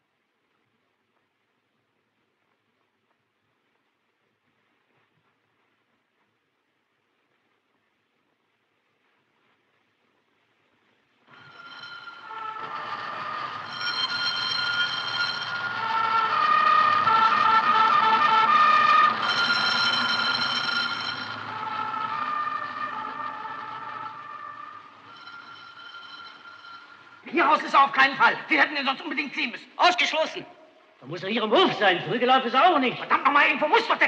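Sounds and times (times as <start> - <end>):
siren blaring: 11.3 - 27.3.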